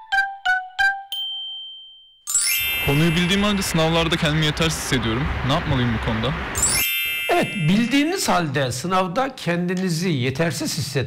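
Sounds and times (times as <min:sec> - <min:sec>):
high bell-like ding: 0:01.1 - 0:04.4, 0:06.6 - 0:08.6
intro jingle: 0:02.3 - 0:08.6
outdoor background noise: 0:02.6 - 0:07.2
man speaking: 0:02.8 - 0:06.4, 0:07.3 - 0:11.0.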